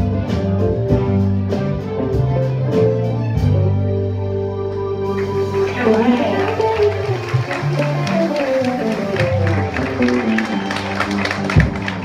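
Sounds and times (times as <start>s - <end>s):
crowd cheering and applauding: 5.0s - 12.0s.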